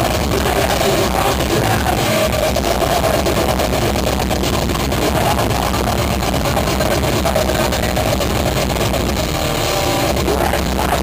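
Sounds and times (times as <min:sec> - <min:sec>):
live metal band playing: 0:00.0 - 0:11.0.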